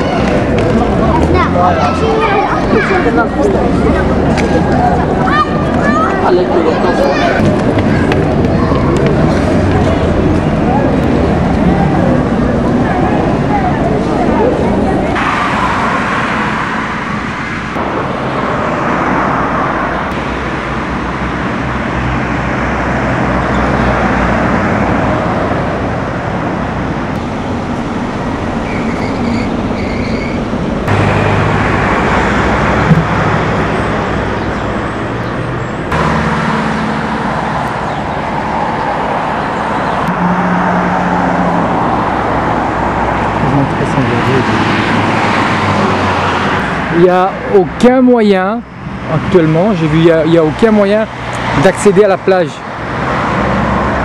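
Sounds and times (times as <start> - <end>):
cars passing: 0.0 - 54.0.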